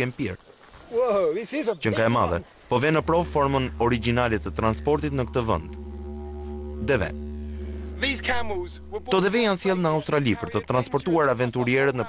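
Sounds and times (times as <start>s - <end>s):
high-pitched insect chirring: 0.6s - 11.0s.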